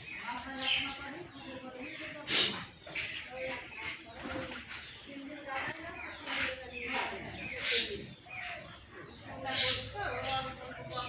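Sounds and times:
birds cooing: 0.0 - 11.0
people's voices: 0.0 - 11.0.

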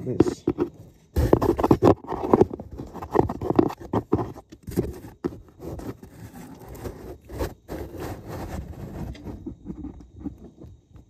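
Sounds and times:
hand knocking and rubbing cardboard: 0.0 - 11.0.

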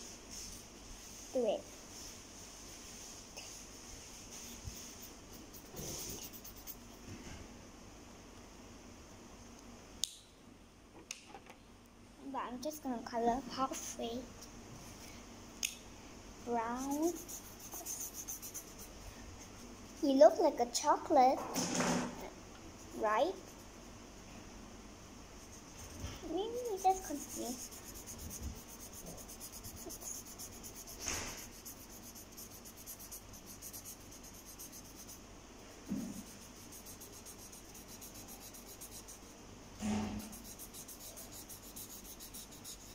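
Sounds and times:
faint room hiss: 0.0 - 42.9
marker rubbing on paper: 4.3 - 6.9, 16.5 - 18.9, 25.4 - 35.2, 35.9 - 39.3, 40.0 - 42.9.

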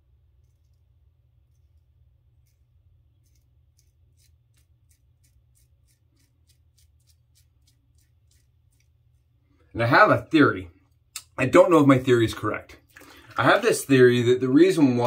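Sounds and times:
razor scraping stubble: 0.4 - 9.4.

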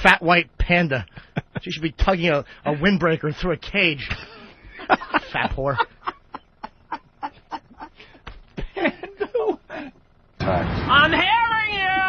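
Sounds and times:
man laughing: 1.0 - 1.8, 4.0 - 10.0.

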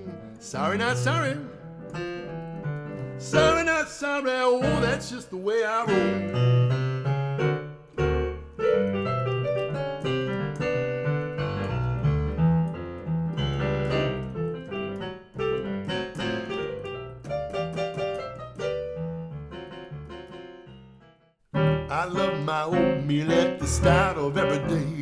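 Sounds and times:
blues piano: 0.0 - 25.0.

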